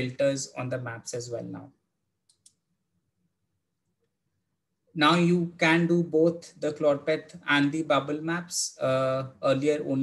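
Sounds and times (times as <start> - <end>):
computer mouse clicks: 2.2 - 2.6.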